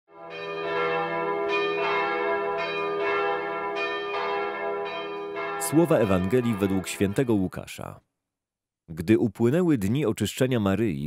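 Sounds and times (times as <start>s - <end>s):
bells ringing: 0.2s - 7.8s.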